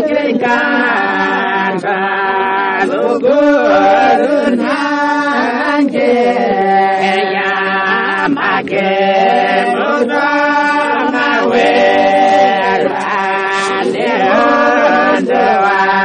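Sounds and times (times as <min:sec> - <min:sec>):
voices singing together: 0:00.0 - 0:16.0.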